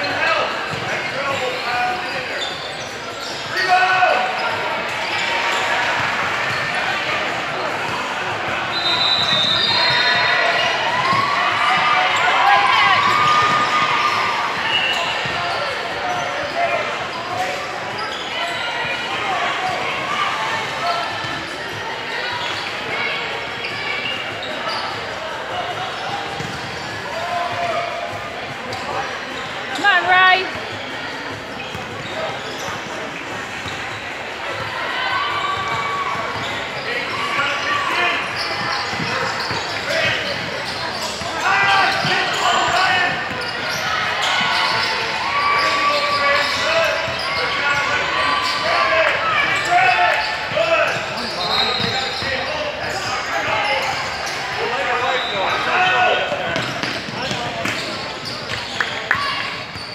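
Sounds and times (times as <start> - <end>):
shoe squeals: 0.0 - 28.1, 28.7 - 34.0, 34.9 - 59.9
players and spectators voices: 0.0 - 59.9
basketballs dribbling on hardwood: 56.5 - 58.6.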